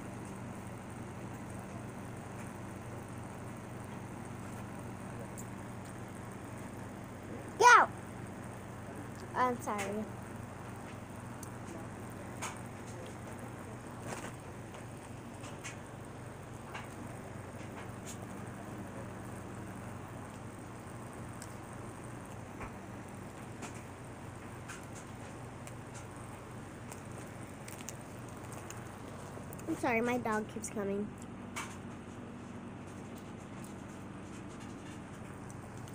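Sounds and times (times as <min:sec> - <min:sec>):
steady low hum: 0:00.0 - 0:35.9.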